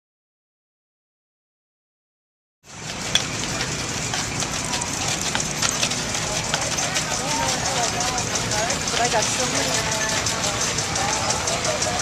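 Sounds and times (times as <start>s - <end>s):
horse hooves on gravel: 2.7s - 12.0s
people talking: 2.7s - 12.0s
wagon wheels crunching on gravel: 2.7s - 12.0s.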